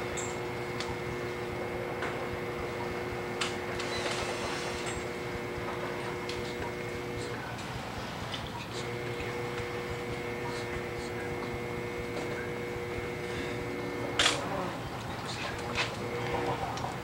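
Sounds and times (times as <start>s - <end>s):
steady hum: 0.0s - 17.0s.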